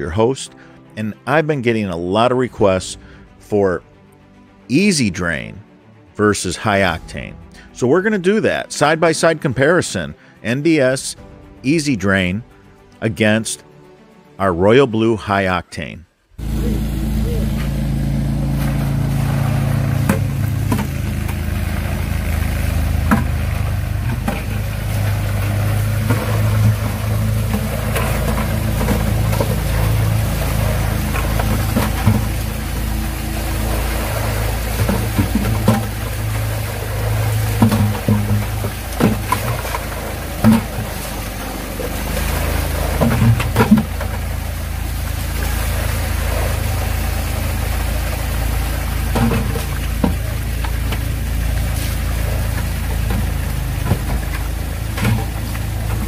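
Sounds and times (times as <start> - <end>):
low drone music: 0.0 - 56.0
water pouring into tubs: 16.4 - 56.0
water splashing: 16.4 - 56.0
plastic buckets knocking: 19.9 - 44.6, 48.9 - 51.2, 52.4 - 56.0.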